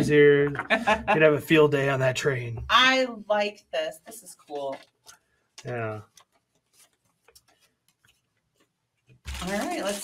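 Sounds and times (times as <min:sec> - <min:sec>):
hands handling paper leaflet: 0:04.4 - 0:10.0.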